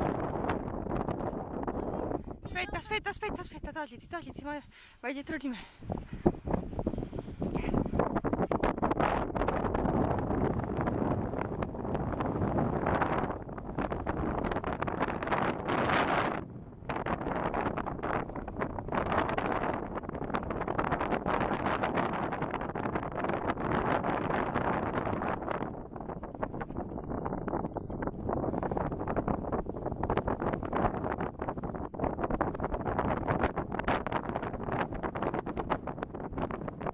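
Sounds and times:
wind gusts on microphone: 0.0s - 36.9s.

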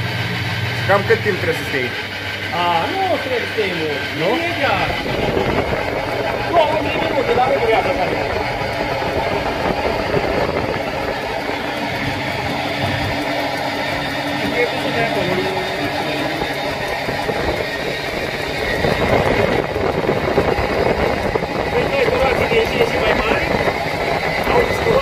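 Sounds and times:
honey extractor whirring: 0.0s - 25.0s.

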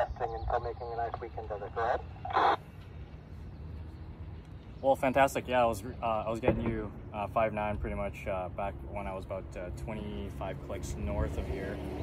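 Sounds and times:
radio background hiss: 0.0s - 2.6s
radio static burst: 0.0s - 2.6s.

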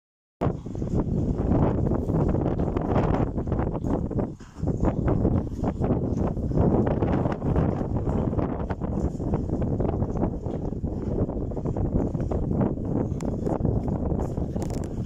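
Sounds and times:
wind buffeting microphone: 0.4s - 15.0s.

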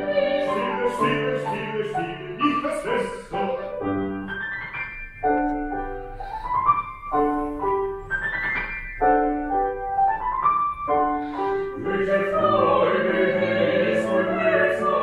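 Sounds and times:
piano playing arpeggios: 0.0s - 15.0s.

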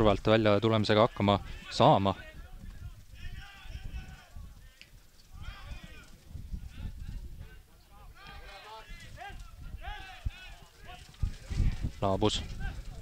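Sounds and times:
footballers shouting calls: 0.0s - 13.0s
wind rumble on microphone: 1.2s - 13.0s.

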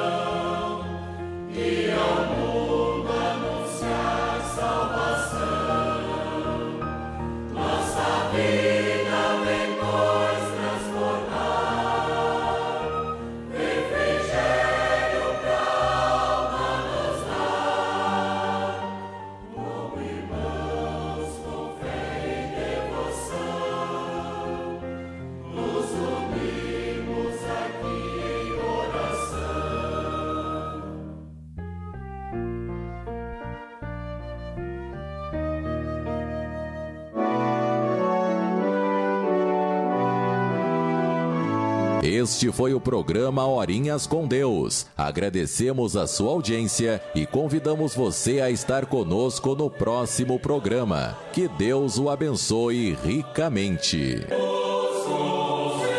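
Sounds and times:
choir singing a hymn: 0.0s - 31.2s, 45.6s - 55.9s.

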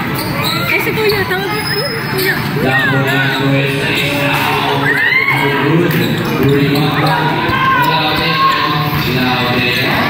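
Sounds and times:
voices of players and spectators: 0.0s - 10.0s.

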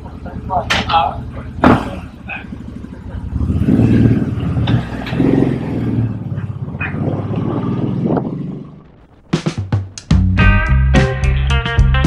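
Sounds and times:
motorcycle engine revving: 0.0s - 11.3s.

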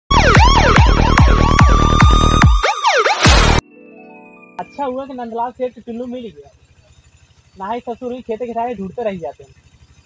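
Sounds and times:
electronic siren swoops: 0.1s - 3.6s
steady high tone: 0.1s - 10.0s.

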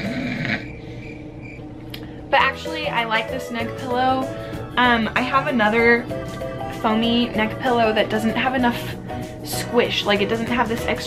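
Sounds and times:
quiet background music: 0.7s - 11.0s.

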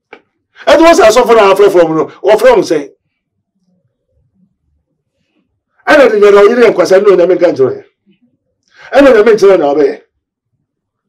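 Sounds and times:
man speaking loudly: 0.6s - 2.9s, 5.8s - 7.9s, 8.8s - 10.1s.

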